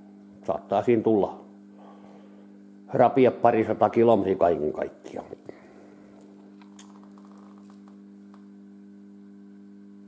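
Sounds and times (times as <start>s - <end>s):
quiet steady hum: 0.0s - 10.0s.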